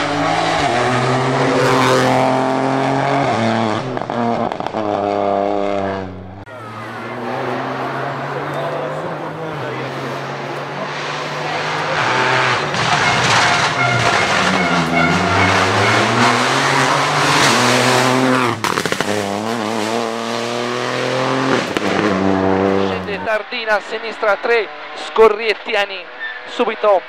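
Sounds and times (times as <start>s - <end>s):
rally car engine revving: 0.0s - 27.0s.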